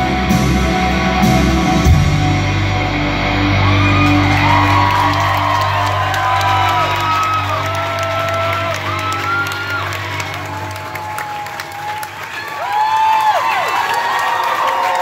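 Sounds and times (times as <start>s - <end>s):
live band chord ringing: 0.0s - 11.2s
audience cheering: 3.3s - 15.0s
audience clapping: 3.6s - 15.0s.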